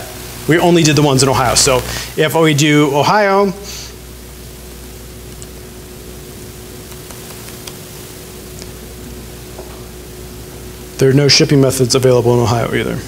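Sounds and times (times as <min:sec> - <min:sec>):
faint steady hum: 0:00.0 - 0:13.0
steady hiss: 0:00.0 - 0:13.0.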